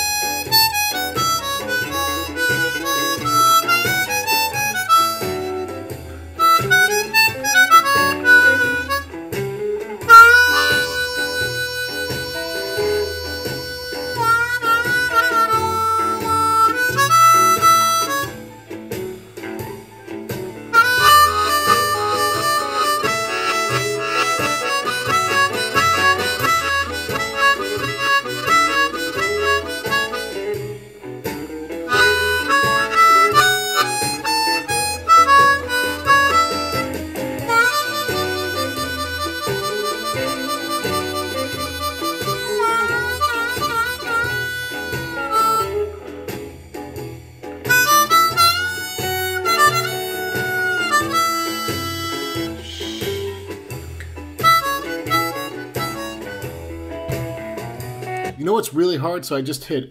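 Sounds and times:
harmonica playing blues phrases: 0.0s - 58.6s
shuffle backing track: 0.0s - 59.0s.

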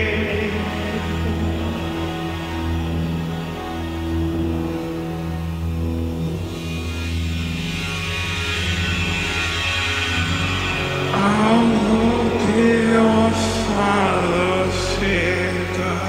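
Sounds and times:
person singing: 0.0s - 4.6s, 10.8s - 16.0s.

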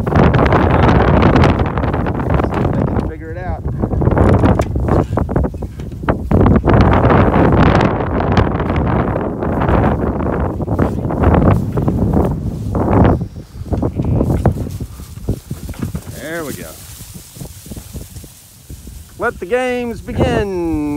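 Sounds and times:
wind buffeting microphone: 0.0s - 20.9s
hooves knocking on wooden pallets: 13.7s - 18.2s
sheep or goat bleating: 13.8s - 14.5s.

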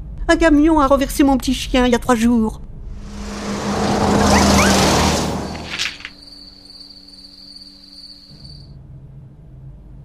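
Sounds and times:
cricket trilling: 5.7s - 8.7s.

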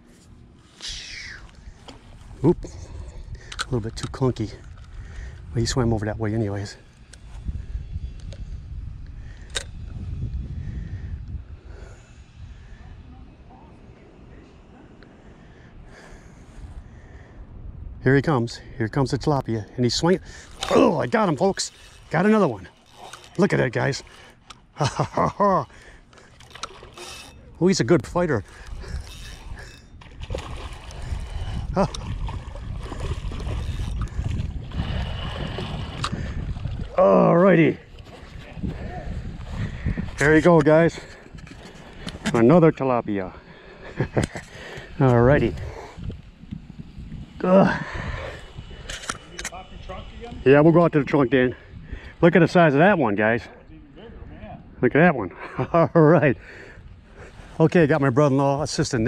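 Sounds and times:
wind rumbling on microphone: 0.0s - 52.4s, 53.6s - 59.0s
fish splashing in water: 30.1s - 36.1s.

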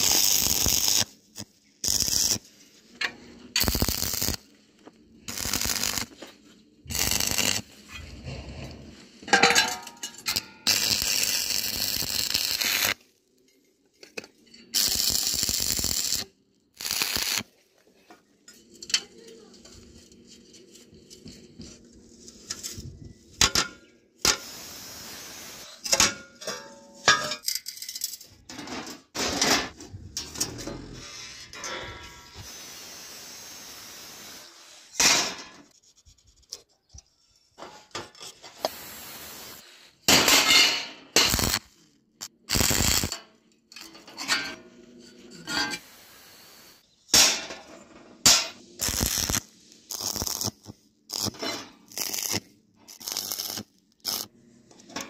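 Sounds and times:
steel pieces clinking and rattling: 25.8s - 28.6s.

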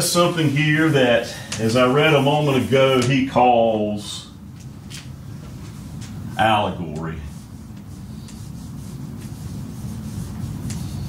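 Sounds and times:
marker rubbing on whiteboard: 0.0s - 3.5s, 5.5s - 11.0s.

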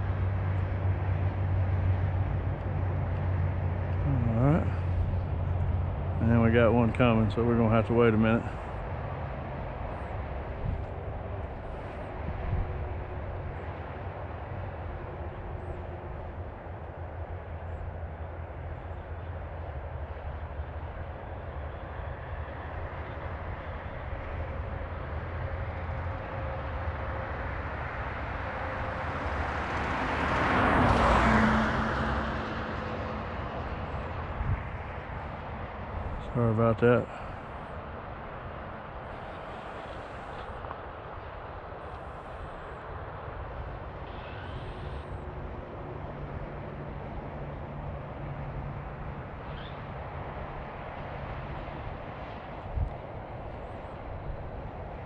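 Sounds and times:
car passing: 0.0s - 55.0s
low outdoor rumble: 0.0s - 55.0s.

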